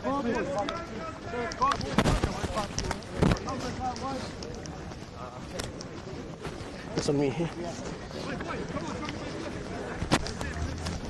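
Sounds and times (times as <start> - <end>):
muffled thumps: 1.8 - 3.5.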